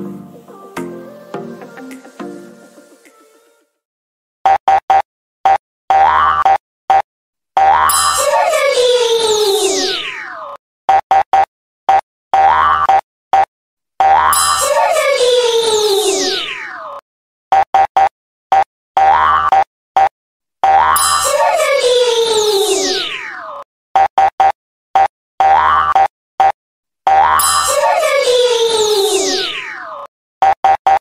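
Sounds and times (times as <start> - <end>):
cartoon boing: 5.9 - 7.0, 7.6 - 8.7, 12.4 - 15.0, 19.0 - 23.6, 25.4 - 26.1, 27.1 - 30.1
cartoon logo jingle: 14.4 - 16.4, 21.0 - 23.1, 27.4 - 29.6
short blips: 24.0 - 27.9.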